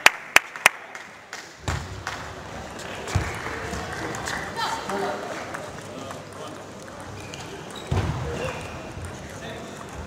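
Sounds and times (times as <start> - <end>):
murmur of voices echoing: 0.8 - 10.0.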